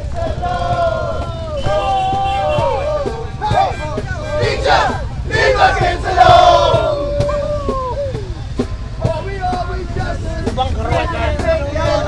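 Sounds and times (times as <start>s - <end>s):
people yelling: 0.0s - 12.0s
steady low rumble: 0.0s - 12.0s.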